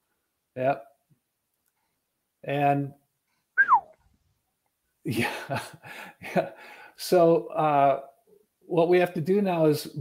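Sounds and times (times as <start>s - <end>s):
high-pitched squeal falling in pitch: 3.6s - 3.8s.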